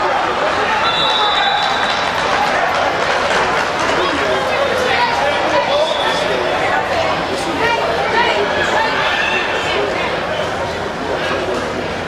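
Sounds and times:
voices chattering in echoing hall: 0.0s - 12.0s
referee's whistle: 0.8s - 2.1s, 5.8s - 6.3s.

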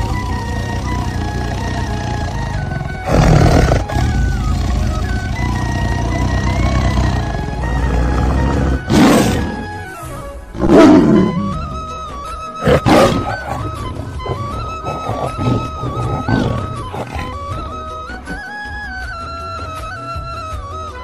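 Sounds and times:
tiger roars: 0.0s - 9.9s, 10.5s - 11.8s, 12.6s - 18.5s
background music with steady melody: 0.0s - 21.0s.

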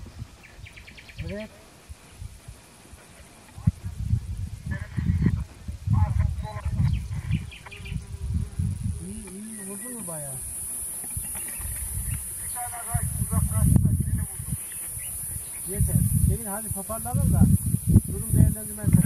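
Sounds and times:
wind rumbling on microphone: 0.0s - 19.0s
distant voices calling out: 4.6s - 17.0s.

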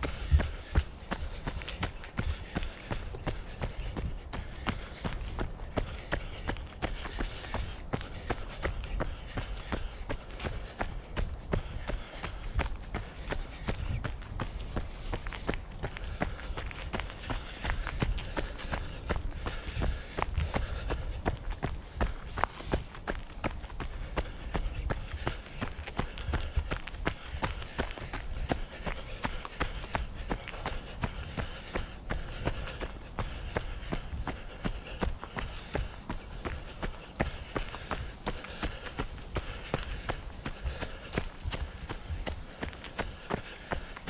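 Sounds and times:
running footsteps on dirt trail: 0.0s - 44.0s.

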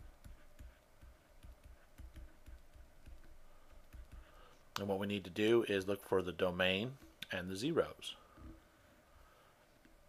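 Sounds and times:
stylus tapping on tablet: 0.0s - 4.9s.

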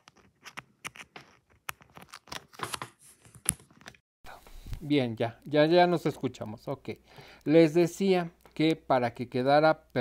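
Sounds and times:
handling noise clicks and scratches: 0.0s - 4.0s.

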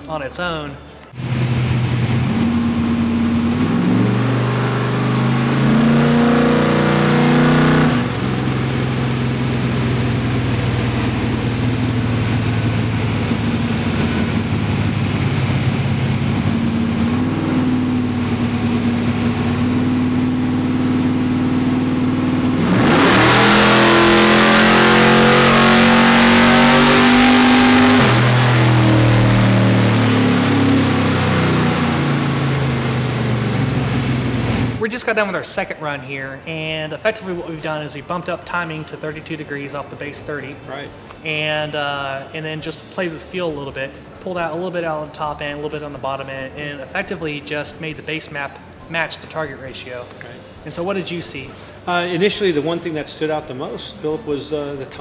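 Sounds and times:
car engine revving: 1.1s - 34.8s.

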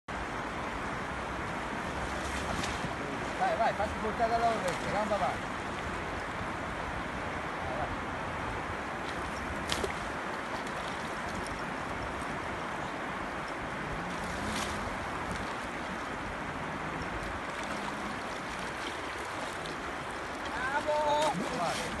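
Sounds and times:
river water rushing over weir: 0.1s - 22.0s.

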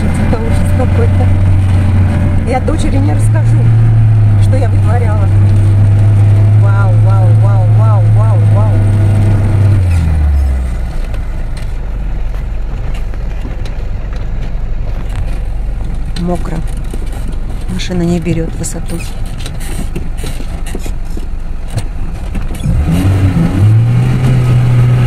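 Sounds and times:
car engine labouring: 0.0s - 25.0s.

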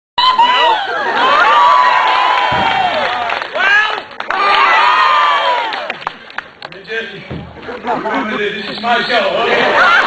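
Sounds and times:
audience cheering and shouting: 0.2s - 6.0s.

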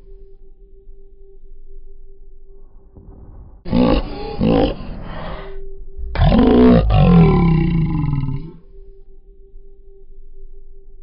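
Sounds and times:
low music drone: 0.0s - 11.0s
deep vocal-like swells: 3.6s - 8.6s.

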